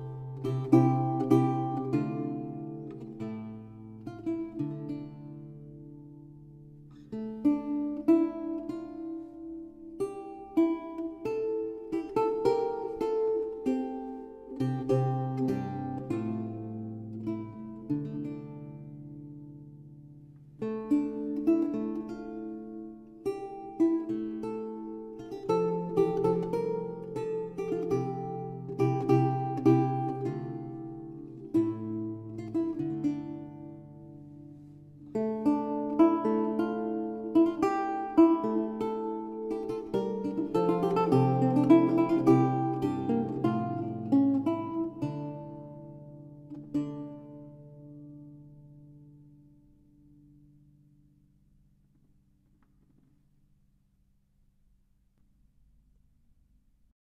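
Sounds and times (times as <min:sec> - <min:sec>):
solo lute playing: 0:00.0 - 0:53.1.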